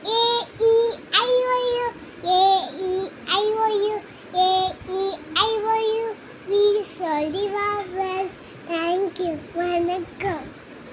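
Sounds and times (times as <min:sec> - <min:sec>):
girl singing unaccompanied: 0:00.0 - 0:10.6.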